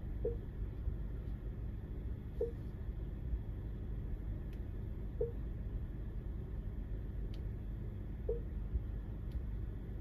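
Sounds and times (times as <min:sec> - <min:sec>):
low hum in car cabin: 0:00.0 - 0:10.0.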